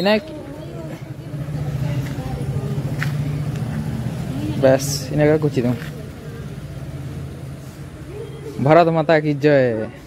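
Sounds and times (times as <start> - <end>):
vehicle engine running: 0.2 - 9.4.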